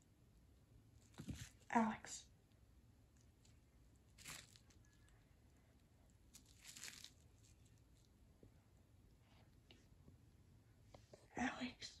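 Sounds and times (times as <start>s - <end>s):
person whispering: 1.7s - 2.3s, 11.2s - 12.0s.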